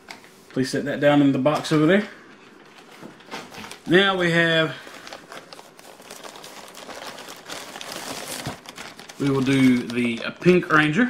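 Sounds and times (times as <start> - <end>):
plastic bag crinkling: 2.7 - 10.7.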